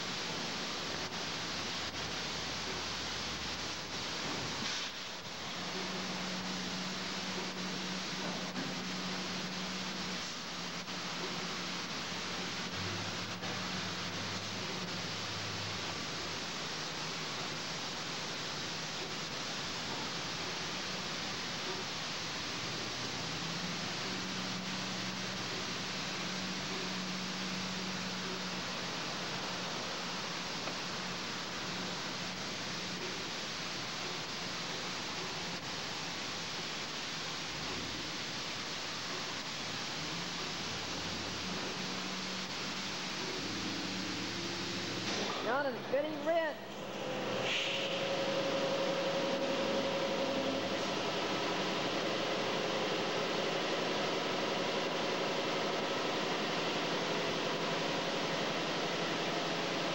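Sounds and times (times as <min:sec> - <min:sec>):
car wash rushing hiss: 0:00.0 - 0:59.9.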